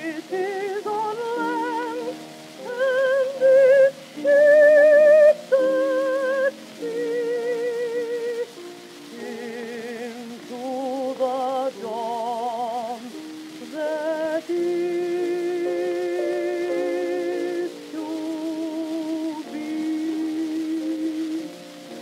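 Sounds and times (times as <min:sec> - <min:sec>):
piano accompaniment: 0:00.0 - 0:22.0
record surface noise: 0:00.0 - 0:22.0
woman singing with vibrato: 0:00.0 - 0:22.0.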